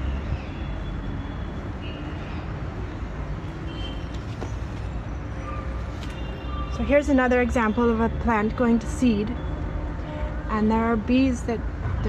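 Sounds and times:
distant city traffic rumble: 0.0s - 12.0s.

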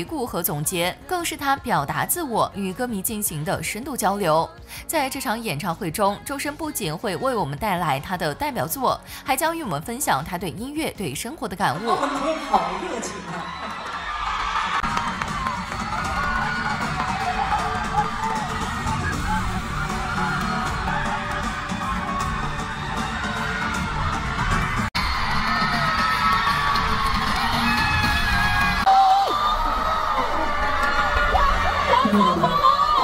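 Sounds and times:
crowd screaming and cheering: 11.8s - 33.0s.

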